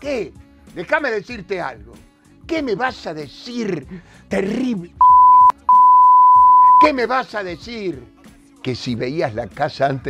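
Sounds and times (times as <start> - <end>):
high censor bleep: 5.0 - 6.9.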